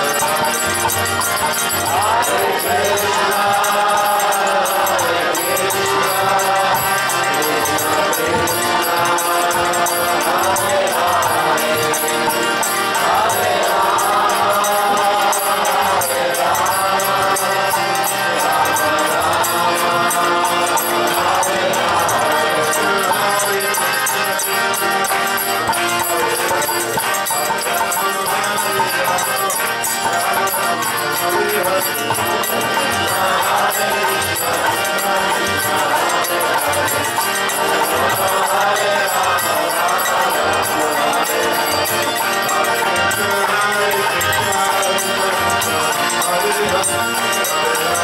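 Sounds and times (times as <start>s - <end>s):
group chanting in unison: 0.0s - 48.0s
harmonium: 0.0s - 48.0s
steady percussion beat: 0.0s - 48.0s.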